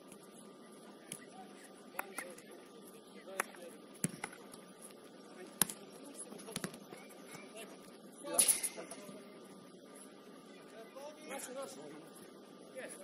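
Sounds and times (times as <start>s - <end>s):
players' voices: 0.2s - 13.0s
football being kicked: 6.5s - 6.8s.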